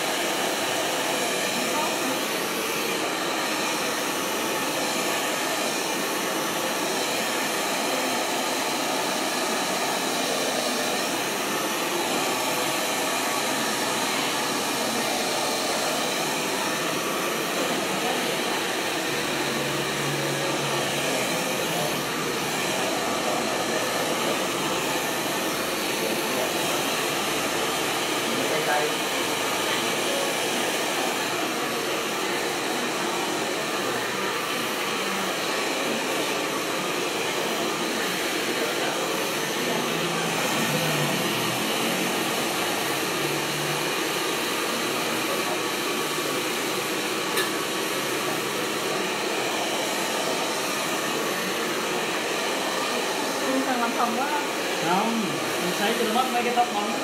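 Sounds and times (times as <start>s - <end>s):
hair dryer blowing: 0.0s - 57.0s.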